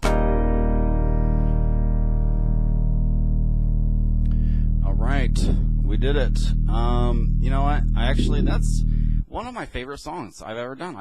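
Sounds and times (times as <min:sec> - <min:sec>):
electronic keyboard chord: 0:00.0 - 0:09.2
low drone: 0:01.2 - 0:09.3
man speaking: 0:04.8 - 0:11.0.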